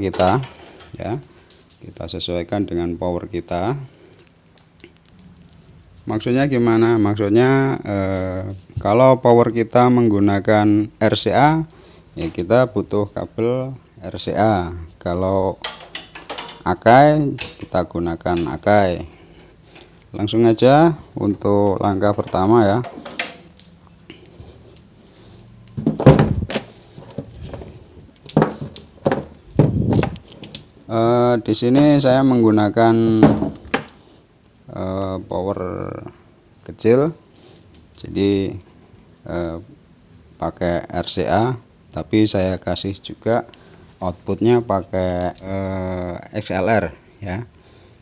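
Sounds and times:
faint room hum: 0.0 - 48.0
audio gear handling knocks: 25.8 - 27.7, 28.3 - 30.3.

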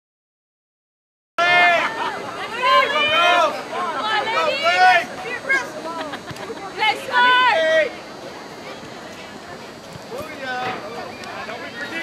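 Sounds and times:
people shouting calls: 1.4 - 9.6
open field background: 1.4 - 12.0.

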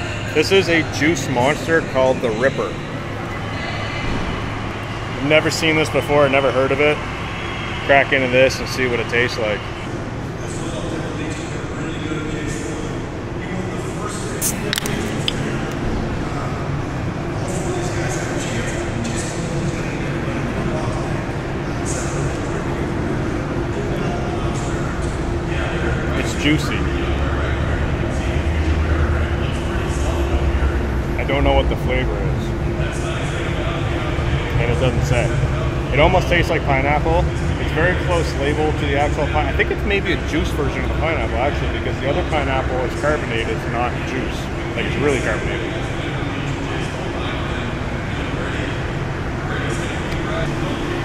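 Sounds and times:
faint voices: 0.0 - 51.0.

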